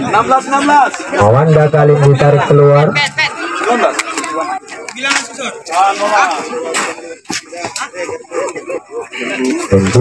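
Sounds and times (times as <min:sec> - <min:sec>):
men talking: 0:00.0 - 0:10.0.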